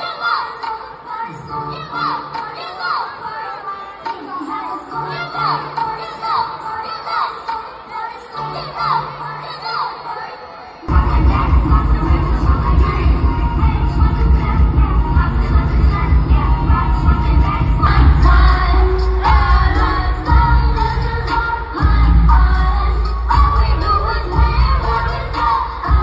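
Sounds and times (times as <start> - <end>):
person singing over bass beat: 10.9 - 26.0.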